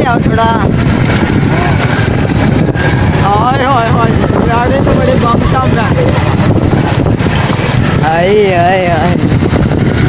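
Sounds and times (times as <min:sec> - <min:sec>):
small motorcycle engine running: 0:00.0 - 0:10.0
wind rumbling on microphone: 0:00.0 - 0:10.0.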